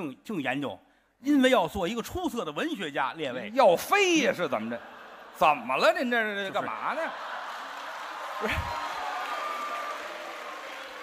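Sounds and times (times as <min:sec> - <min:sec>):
theatre audience laughing: 0:04.4 - 0:08.9
audience clapping: 0:06.6 - 0:11.0.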